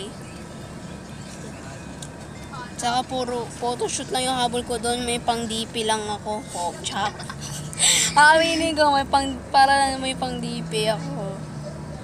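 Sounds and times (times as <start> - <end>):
bus engine and road noise: 0.0 - 12.0
girl's voice: 2.8 - 7.2, 8.0 - 11.4.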